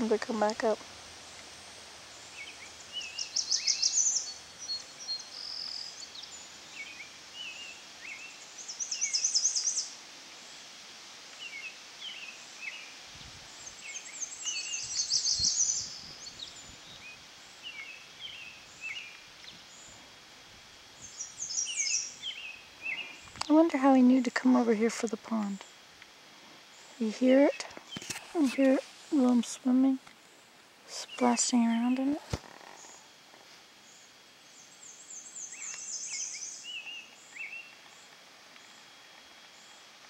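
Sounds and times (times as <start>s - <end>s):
songbird high trill: 2.2s - 10.0s, 13.6s - 20.0s, 21.0s - 23.3s, 34.6s - 37.8s.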